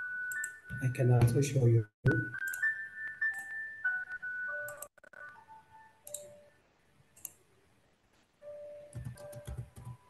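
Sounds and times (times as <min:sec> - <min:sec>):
electronic melody of pure tones: 0:00.0 - 0:06.6
sharp clicks: 0:07.2 - 0:07.4.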